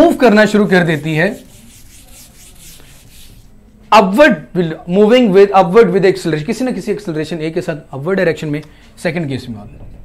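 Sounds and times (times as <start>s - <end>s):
person speaking: 0.0s - 4.2s
marker scratching on whiteboard: 0.2s - 3.5s.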